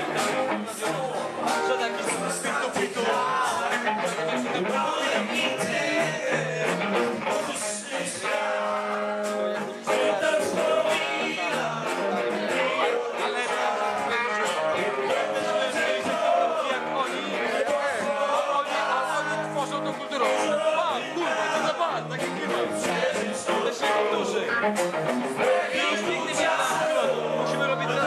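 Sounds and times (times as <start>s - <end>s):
live rock band with singing: 0.0s - 28.0s.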